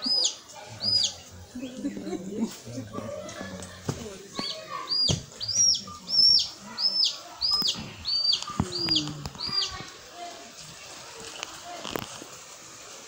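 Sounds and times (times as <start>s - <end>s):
bird calling: 0.0s - 2.0s, 4.3s - 9.9s.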